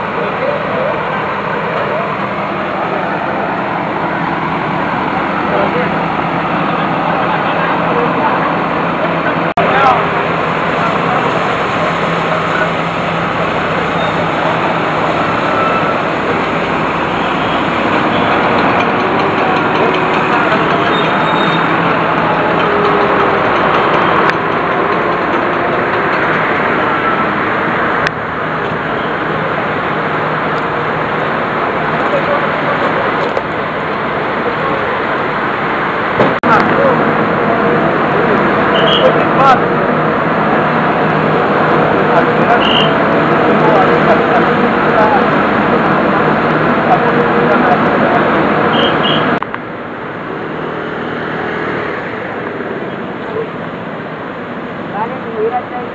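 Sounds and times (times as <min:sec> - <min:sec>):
people's voices: 0:00.0 - 0:49.6, 0:51.7 - 0:55.9
diesel engine running: 0:00.0 - 0:55.9
road traffic: 0:00.0 - 0:55.9.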